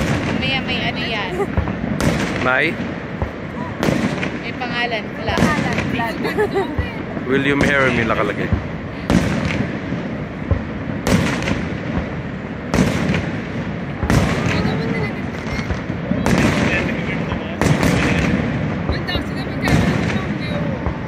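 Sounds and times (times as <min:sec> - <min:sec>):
fireworks booming overhead: 0:00.0 - 0:21.0.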